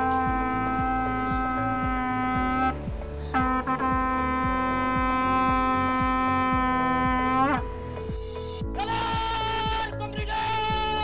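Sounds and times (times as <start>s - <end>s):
bugle holding a long note: 0.0s - 7.6s, 8.8s - 11.0s
background music with drum beat: 0.0s - 11.0s.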